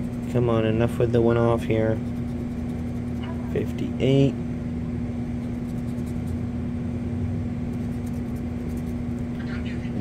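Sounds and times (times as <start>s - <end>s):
scratching lottery ticket: 0.0s - 3.7s, 5.4s - 6.4s, 7.7s - 9.6s
steady low hum: 0.0s - 10.0s.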